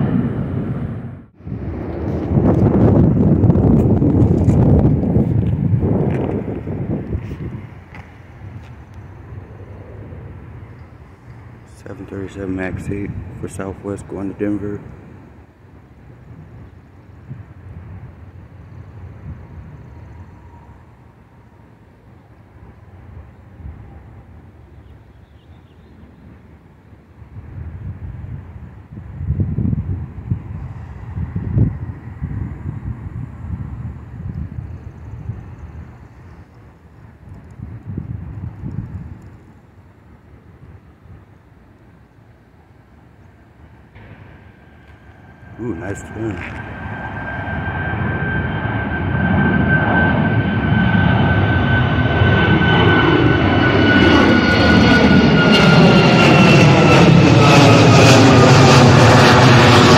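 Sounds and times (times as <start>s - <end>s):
wind on microphone: 0.0s - 13.9s, 27.2s - 39.6s
road traffic: 0.0s - 59.9s.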